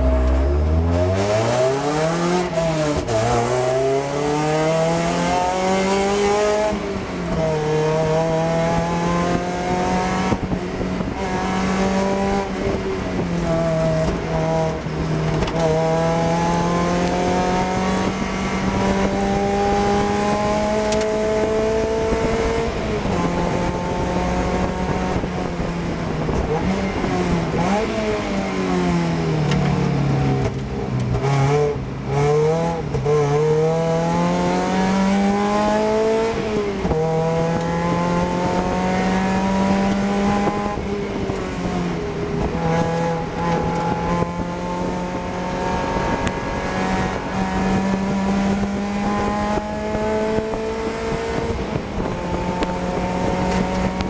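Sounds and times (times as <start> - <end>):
car engine revving through gears: 0.0 - 54.0.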